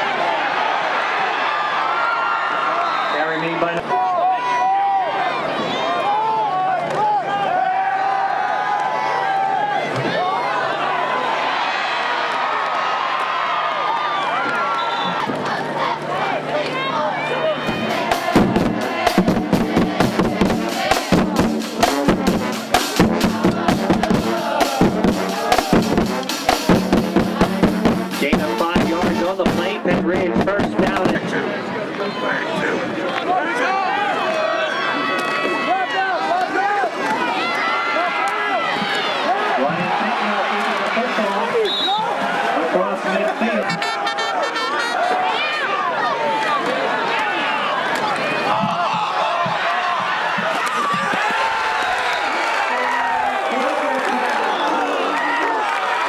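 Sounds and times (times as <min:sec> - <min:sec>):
crowd voices: 0:00.0 - 0:56.0
marching band playing: 0:17.3 - 0:31.4
drums beating: 0:17.6 - 0:31.4, 0:48.5 - 0:52.1.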